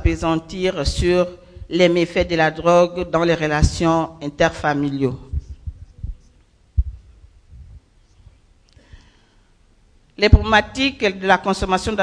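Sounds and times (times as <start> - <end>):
dull thumps on microphone: 0.9 - 3.9, 5.3 - 8.4.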